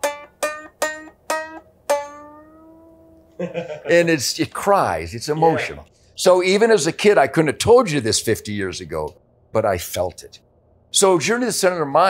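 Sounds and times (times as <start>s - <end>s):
guitar notes picked slowly: 0.0s - 3.4s.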